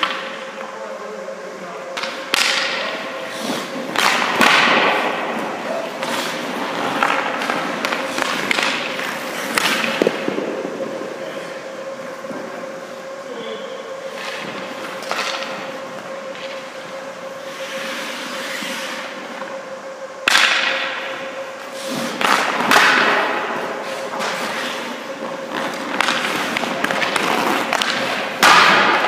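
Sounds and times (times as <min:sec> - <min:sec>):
faint steady hum: 0:00.0 - 0:29.0
skate blades scraping ice: 0:03.0 - 0:11.6, 0:17.4 - 0:19.2, 0:21.6 - 0:29.0.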